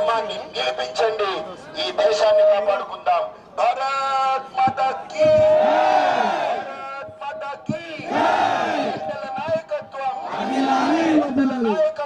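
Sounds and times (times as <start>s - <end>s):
man shouting into a microphone: 0.0s - 12.0s
crowd shouting: 4.8s - 6.8s, 7.8s - 9.4s, 10.1s - 11.8s.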